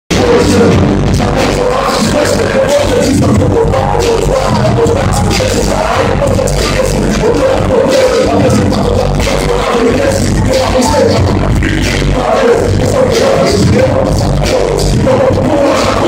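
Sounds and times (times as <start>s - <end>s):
bass-heavy hip hop beat: 0.1s - 16.0s
person rapping into microphone: 0.1s - 16.0s.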